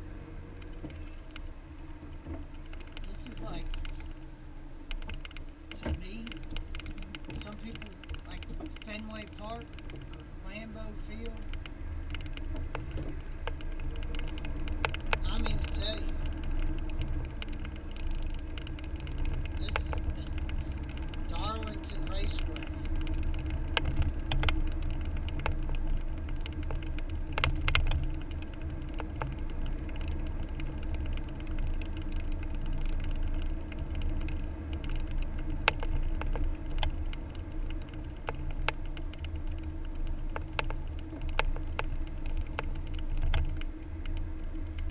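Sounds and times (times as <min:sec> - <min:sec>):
sharp clicks and rattles: 0:00.0 - 0:44.9
tyre and engine rumble: 0:00.0 - 0:44.9.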